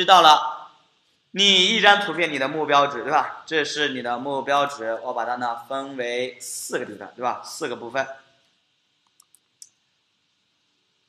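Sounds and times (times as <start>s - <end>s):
man's voice: 0.0s - 0.6s, 1.4s - 8.1s
computer mouse clicks: 9.0s - 9.8s.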